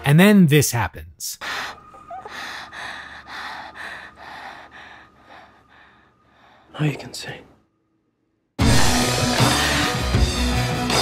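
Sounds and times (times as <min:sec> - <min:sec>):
woman gasping and panting: 0:01.4 - 0:06.6.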